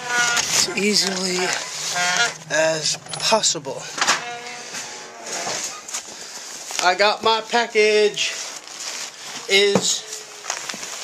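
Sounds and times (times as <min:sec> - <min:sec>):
man's voice: 0:00.5 - 0:01.7, 0:02.4 - 0:04.0, 0:09.5 - 0:10.0.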